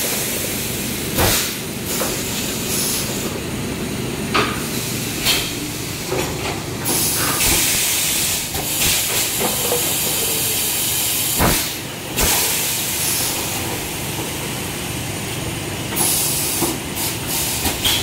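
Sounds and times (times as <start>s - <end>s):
compressed air hissing: 1.2s - 3.2s, 6.8s - 13.3s, 16.0s - 18.0s.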